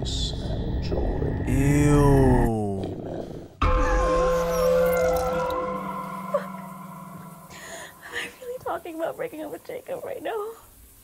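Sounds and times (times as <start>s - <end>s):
loud music sting: 3.6s - 8.4s
horror film score: 3.6s - 8.5s
eerie wavering tones: 3.6s - 9.2s.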